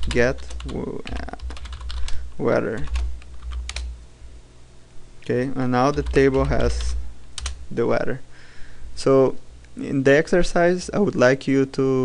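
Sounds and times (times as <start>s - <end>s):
keyboard keystrokes: 0.0s - 2.2s, 2.8s - 3.9s, 5.9s - 7.6s
steady low hum: 0.0s - 12.0s.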